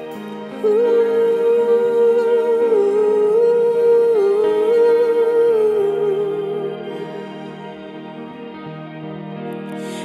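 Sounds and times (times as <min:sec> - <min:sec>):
woman singing wordless melody: 0:00.0 - 0:08.3
soft sustained instrumental chords: 0:00.0 - 0:10.0.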